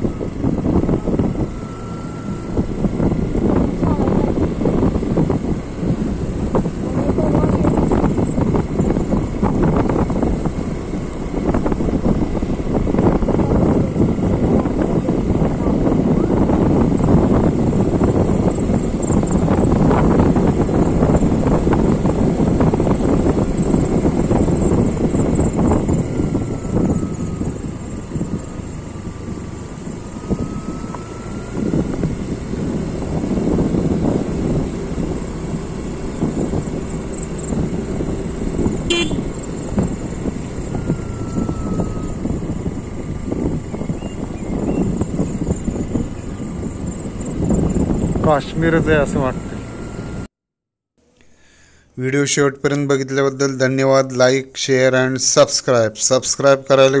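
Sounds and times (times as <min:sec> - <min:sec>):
vehicle engine and tyre rumble: 0:00.0 - 0:50.4.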